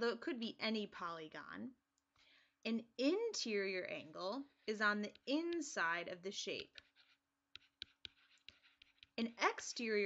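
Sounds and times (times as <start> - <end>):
stylus ticking on drawing tablet: 4.5 - 10.0.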